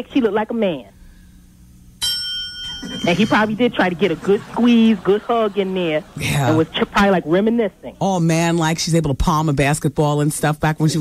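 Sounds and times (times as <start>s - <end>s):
bright bell ding: 2.0s - 3.6s.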